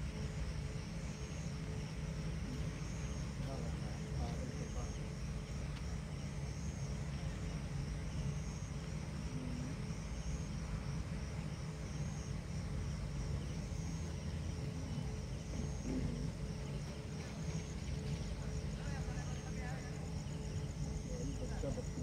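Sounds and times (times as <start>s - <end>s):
low outdoor night rumble: 0.0s - 22.0s.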